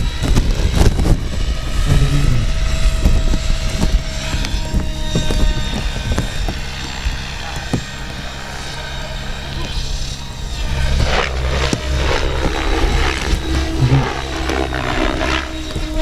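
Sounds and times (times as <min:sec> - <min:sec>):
model helicopter buzzing: 0:00.0 - 0:16.0.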